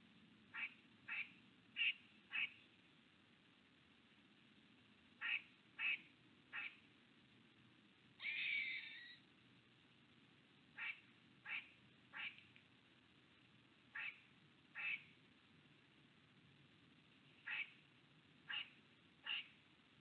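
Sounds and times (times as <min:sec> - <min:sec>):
animal mewing calls: 0:08.2 - 0:09.2.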